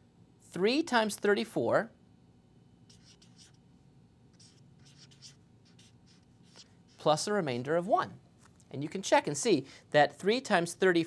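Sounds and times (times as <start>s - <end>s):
marker scratching on paper: 2.9s - 3.6s, 4.3s - 7.3s.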